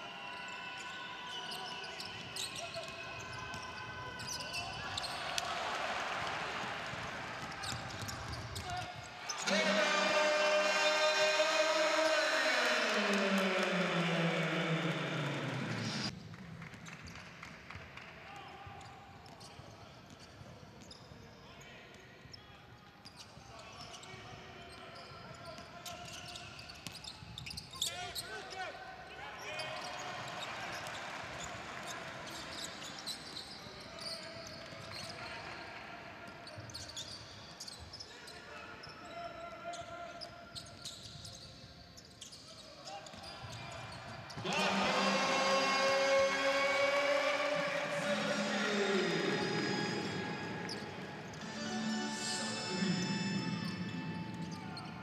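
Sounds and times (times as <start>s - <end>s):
crowd voices echoing: 0.0s - 16.1s, 44.3s - 55.0s
loud arena music: 44.4s - 55.0s.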